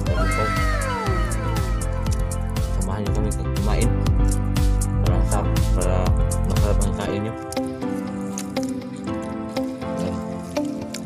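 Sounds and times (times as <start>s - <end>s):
cat meowing: 0.0s - 2.2s
music with a steady beat: 0.0s - 7.0s.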